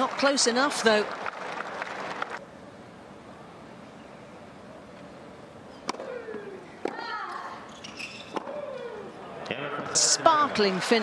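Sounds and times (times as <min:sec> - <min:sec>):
tennis ball hit by racket: 0:05.8 - 0:07.1, 0:08.3 - 0:08.6.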